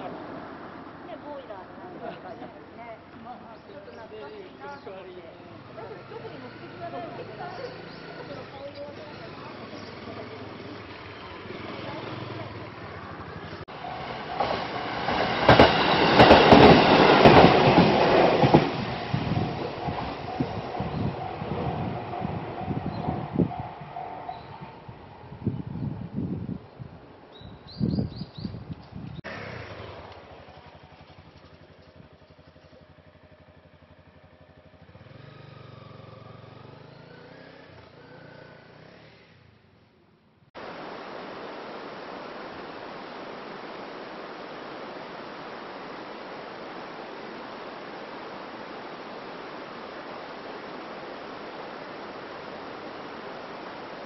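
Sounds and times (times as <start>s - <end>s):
electric train passing: 0.0s - 26.2s, 29.3s - 39.7s, 40.8s - 54.0s
train wheels clacking on rail joints: 14.2s - 20.7s.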